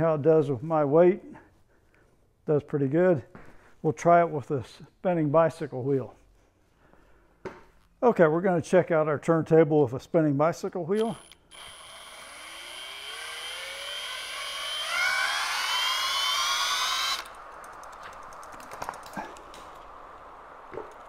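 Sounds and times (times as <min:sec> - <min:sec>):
faint steady noise: 0:00.0 - 0:21.0
cordless drill whining: 0:11.0 - 0:21.0.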